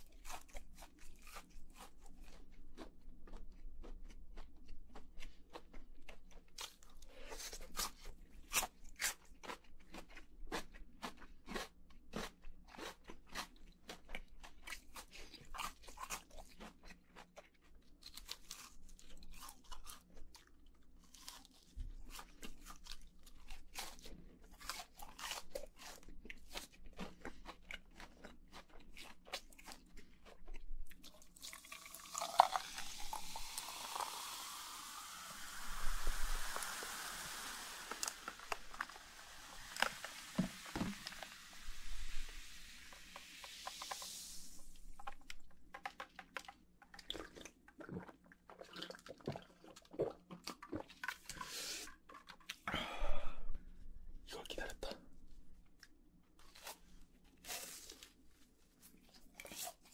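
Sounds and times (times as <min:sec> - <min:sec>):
crunchy chewing: 0:00.0 - 0:34.3
soda fizzing: 0:31.3 - 0:45.4
plastic bottle opening: 0:35.4 - 0:47.3.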